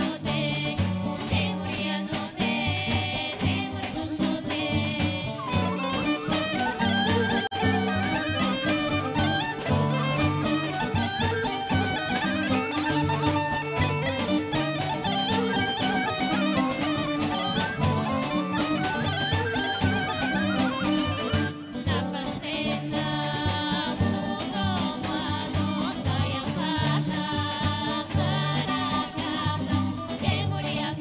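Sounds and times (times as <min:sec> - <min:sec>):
tambura: 0:00.0 - 0:31.0
fast wind-instrument melody: 0:05.4 - 0:22.0.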